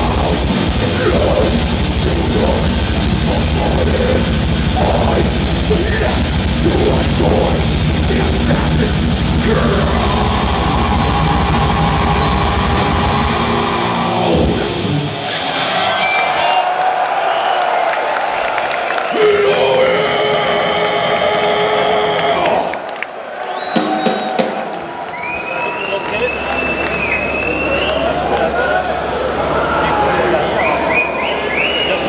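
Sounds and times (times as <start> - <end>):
death metal band playing live: 0.0 - 15.8, 19.1 - 22.7.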